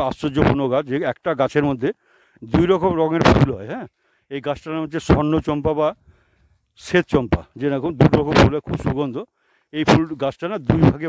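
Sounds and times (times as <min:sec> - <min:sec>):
man speaking: 0:00.0 - 0:06.0, 0:06.8 - 0:11.0.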